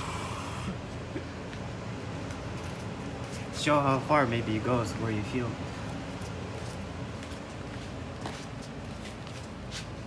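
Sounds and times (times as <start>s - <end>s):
computer fans blowing air: 0.0s - 10.0s
faint scuffing footsteps: 0.9s - 3.8s, 4.8s - 10.0s.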